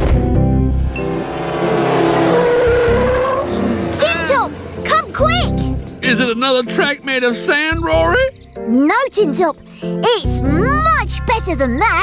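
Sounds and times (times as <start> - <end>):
cartoon race car engine: 0.9 - 7.0.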